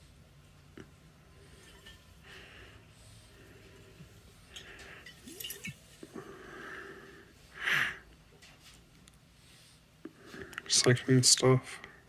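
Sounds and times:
man breathing: 0:02.2 - 0:05.3, 0:06.0 - 0:08.1.

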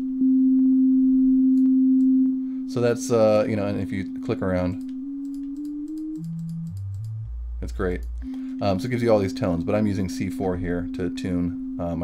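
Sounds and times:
sine test tone changing pitch: 0:00.0 - 0:12.0.

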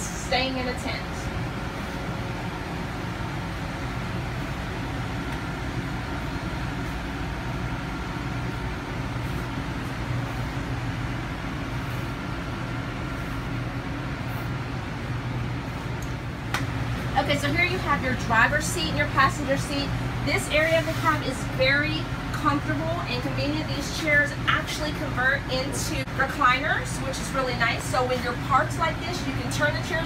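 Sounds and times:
low mechanical hum: 0:00.0 - 0:30.0.

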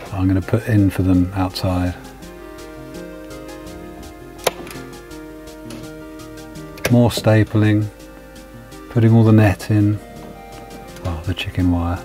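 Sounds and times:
background music sustained tones: 0:00.0 - 0:12.0.

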